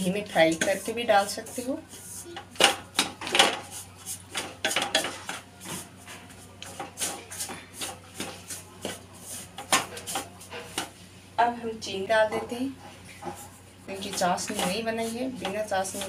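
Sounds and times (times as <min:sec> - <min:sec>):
wooden spatula scraping metal pan: 0:13.2 - 0:16.0.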